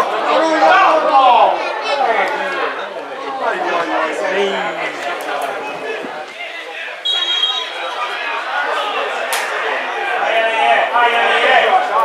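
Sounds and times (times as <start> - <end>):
voices talking and calling out: 0.0 - 12.0.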